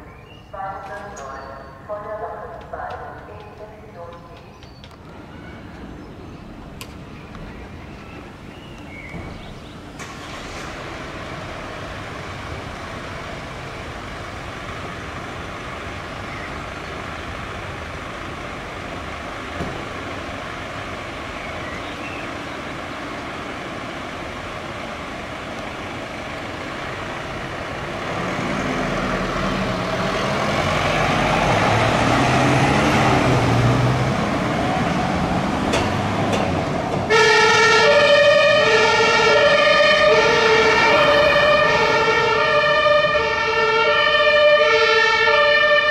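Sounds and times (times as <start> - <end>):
van engine running: 7.5 - 31.2
two-tone emergency siren: 37.1 - 45.9.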